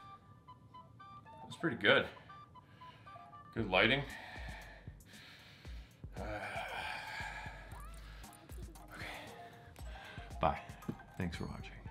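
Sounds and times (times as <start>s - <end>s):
man sighing: 6.1s - 10.3s.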